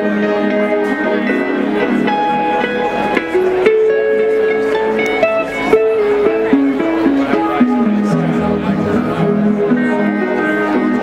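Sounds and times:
funk band playing live: 0.0 - 11.0
lead electric guitar notes: 0.0 - 11.0.

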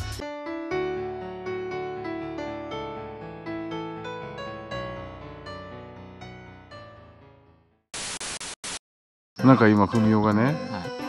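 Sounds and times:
piano tune: 0.2 - 7.9
tv static bursts: 7.9 - 8.8.

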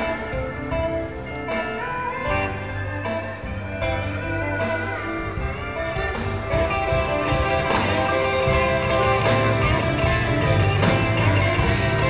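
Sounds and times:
live band playing guitars: 0.0 - 12.0.

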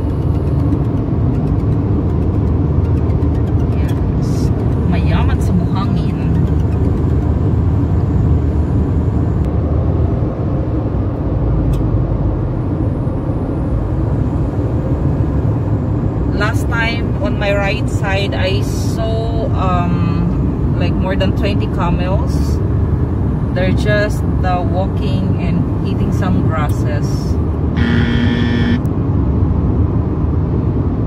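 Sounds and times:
car cabin road and engine noise: 0.0 - 31.0.

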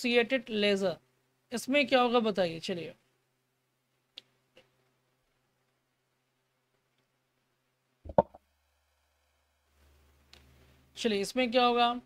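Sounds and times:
sharp pop: 8.1 - 8.4.

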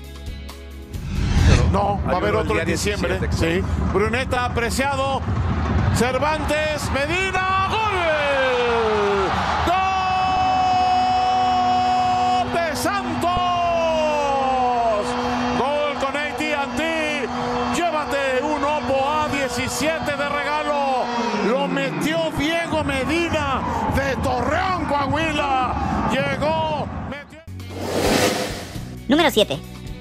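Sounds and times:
stadium crowd cheering: 4.2 - 26.6.

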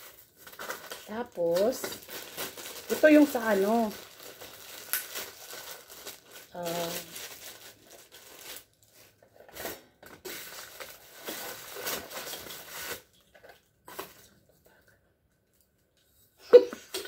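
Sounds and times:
plastic bags crinkling: 0.0 - 14.4.

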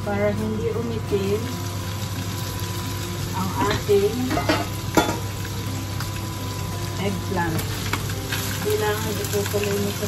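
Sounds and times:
food sizzling in a pan: 0.8 - 10.0
metal pot lid knocking: 3.6 - 5.3.

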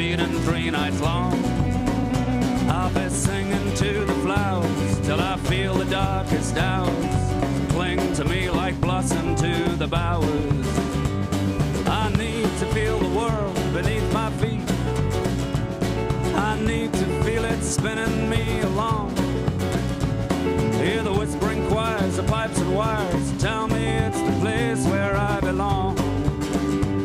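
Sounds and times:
acoustic guitar strumming: 0.0 - 27.0
bass: 0.0 - 27.0
drum kit: 0.0 - 27.0
live rock band playing: 0.0 - 27.0
sliding melody line: 0.0 - 27.0.

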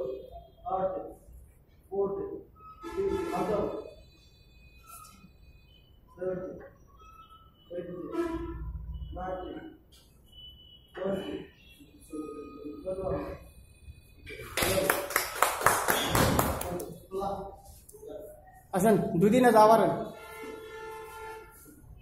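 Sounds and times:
faint steady high tone: 1.9 - 14.4.

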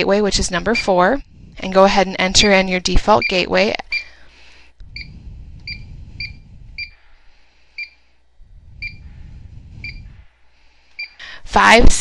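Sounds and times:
low rumble: 0.0 - 2.8, 4.7 - 10.8
keypad beeps: 3.1 - 4.1, 5.0 - 6.9.

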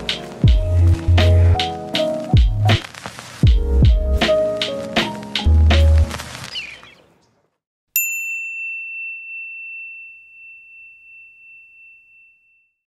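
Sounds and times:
bell-like ding: 8.0 - 12.8.

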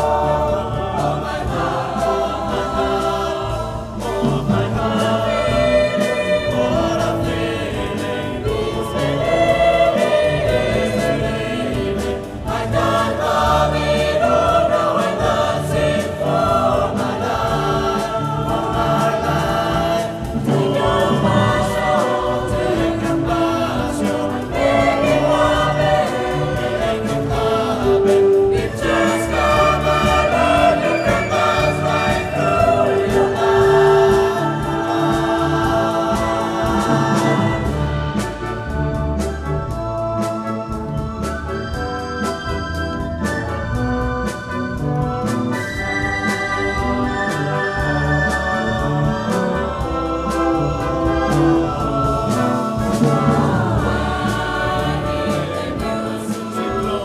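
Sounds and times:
choir singing: 0.0 - 57.0
flutes and wind band playing: 0.0 - 57.0.

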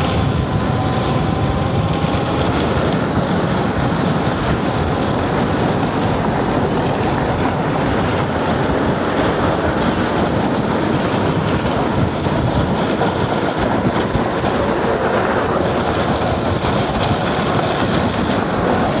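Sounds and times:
tyre and road noise: 0.0 - 19.0
wind on microphone: 0.0 - 19.0.

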